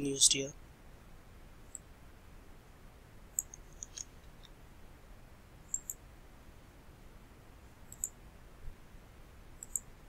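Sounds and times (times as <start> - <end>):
low steady hiss: 0.0 - 10.0
computer mouse clicks: 5.7 - 6.0, 7.9 - 8.2, 9.6 - 9.9.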